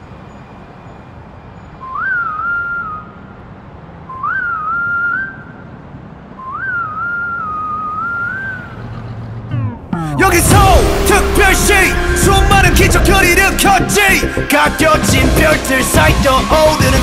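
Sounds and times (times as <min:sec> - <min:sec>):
person whistling a tune: 0:01.8 - 0:03.2, 0:04.1 - 0:05.6, 0:06.4 - 0:08.6, 0:15.2 - 0:17.0
low rumble: 0:09.5 - 0:17.0.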